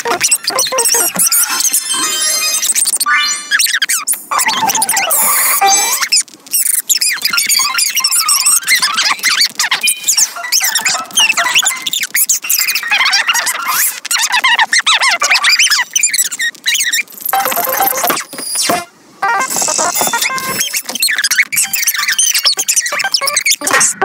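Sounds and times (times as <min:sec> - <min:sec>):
high-pitched squeaky voices: 0:00.0 - 0:24.0
sped-up cartoon music: 0:17.4 - 0:18.1.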